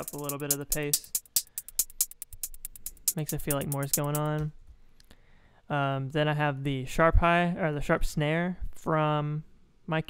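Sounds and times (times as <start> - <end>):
programmed hi-hat ticks: 0.0 - 4.5.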